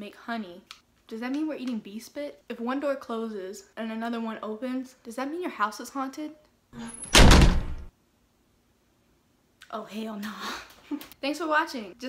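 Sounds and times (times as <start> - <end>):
loud rough door burst: 6.8 - 7.9.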